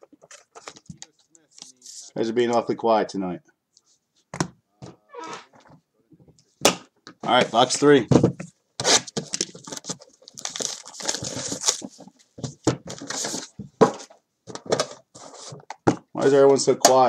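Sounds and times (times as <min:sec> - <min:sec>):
wrapping tearing and crinkling: 0:08.8 - 0:12.0.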